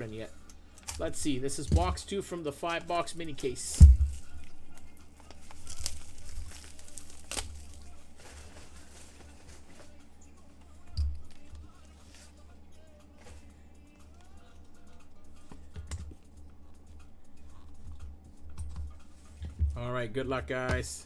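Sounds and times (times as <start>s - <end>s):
dull thump: 3.8s - 4.2s.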